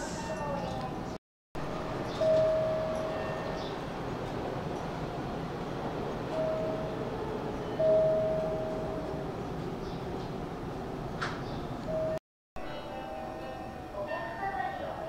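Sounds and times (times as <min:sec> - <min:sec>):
electric train humming: 0:00.0 - 0:15.0
single-pitched chime: 0:02.1 - 0:03.7.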